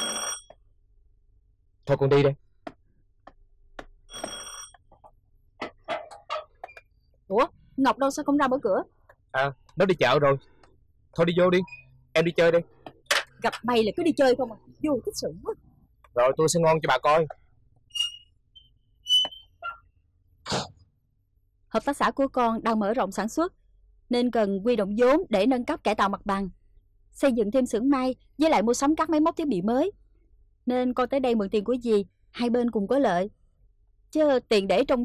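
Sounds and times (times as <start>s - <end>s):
doorbell ringing: 0.0s - 0.5s.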